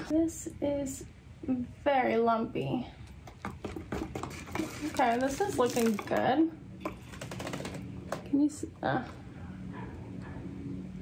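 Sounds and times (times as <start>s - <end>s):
brush scraping inside paint can: 3.8s - 6.2s.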